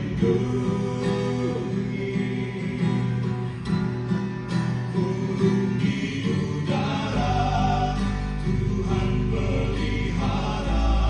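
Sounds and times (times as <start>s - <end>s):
group singing into microphones: 0.0s - 3.8s, 4.6s - 11.0s
acoustic guitar: 0.0s - 11.0s.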